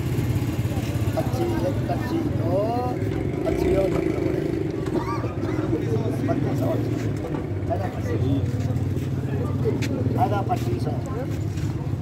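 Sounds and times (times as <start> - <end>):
men's voices: 0.8 - 12.0.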